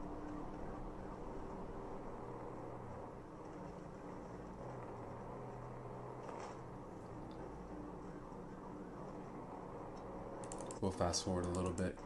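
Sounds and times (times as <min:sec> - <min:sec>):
car engine and road drone: 0:00.0 - 0:12.0.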